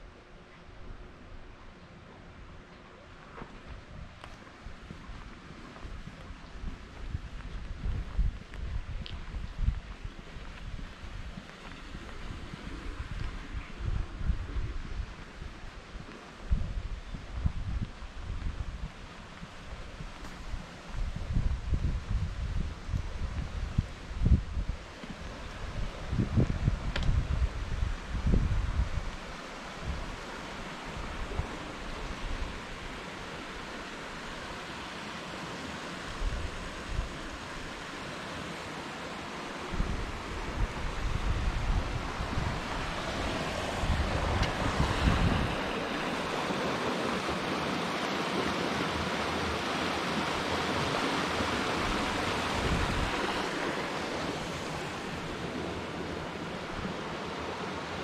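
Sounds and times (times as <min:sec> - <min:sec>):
wind buffeting microphone: 0:03.5 - 0:34.4, 0:36.0 - 0:38.6, 0:39.3 - 0:57.8
river rushing over rocks: 0:17.6 - 0:58.0.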